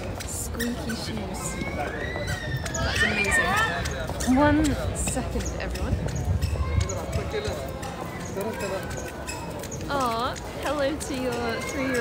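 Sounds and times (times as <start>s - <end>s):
footsteps on pavement: 0.0s - 12.0s
people talking: 0.0s - 12.0s.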